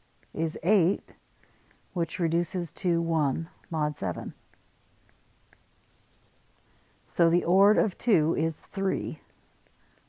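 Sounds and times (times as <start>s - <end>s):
stylus scratching: 3.4s - 7.9s.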